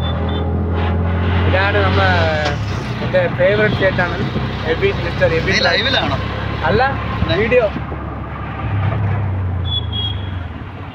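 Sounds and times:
auto rickshaw engine drone: 0.0s - 10.9s
road noise: 0.0s - 10.9s.

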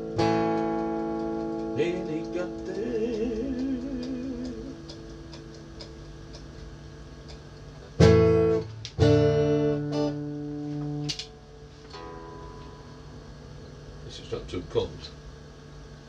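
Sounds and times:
electric guitar strummed chords: 0.0s - 14.1s.

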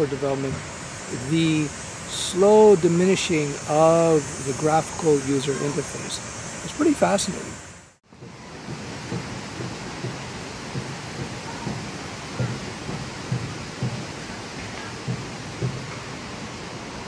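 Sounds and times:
steady rushing noise: 0.0s - 17.0s
soft low thumps: 8.1s - 16.1s.

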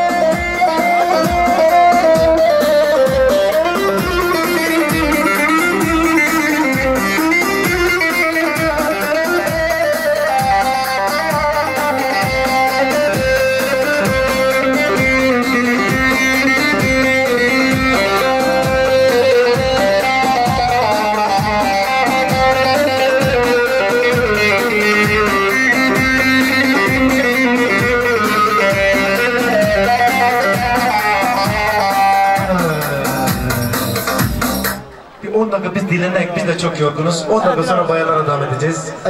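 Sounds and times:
steady drum beat: 0.0s - 34.9s
plucked-string melody: 0.0s - 35.2s.

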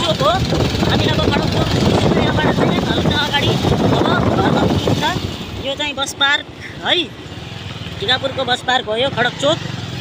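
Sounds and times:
wind rushing over microphone: 0.0s - 5.8s
motorcycle engine: 0.0s - 10.0s.

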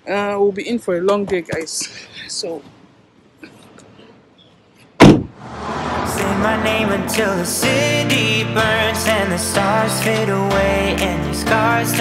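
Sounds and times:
whoosh transition effect: 5.3s - 8.4s
music with singing: 6.0s - 12.0s.

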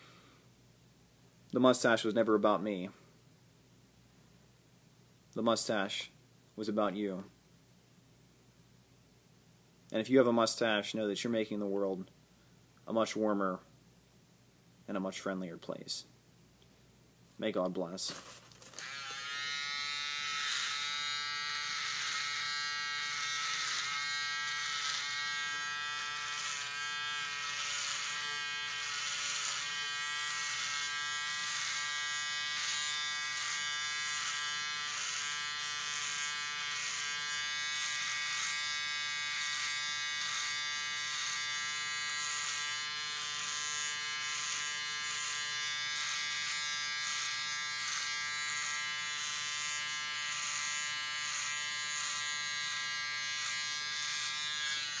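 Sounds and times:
electric trimmer buzzing: 18.6s - 55.0s.

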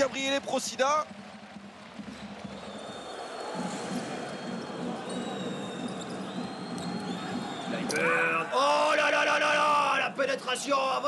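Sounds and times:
crowd noise: 0.0s - 11.0s.

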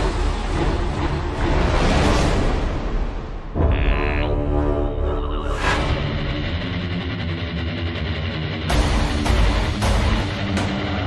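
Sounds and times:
background music with guitar: 4.9s - 11.0s.

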